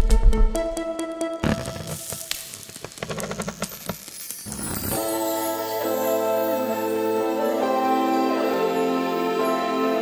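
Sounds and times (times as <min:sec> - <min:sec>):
crackling hissing noise: 0:01.4 - 0:09.1.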